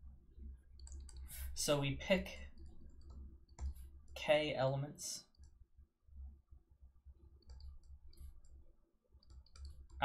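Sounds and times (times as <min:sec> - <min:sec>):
low steady hum: 0:00.0 - 0:10.0
stylus clicking on pen tablet: 0:00.8 - 0:01.4, 0:02.8 - 0:03.9, 0:07.4 - 0:08.6, 0:09.2 - 0:10.0.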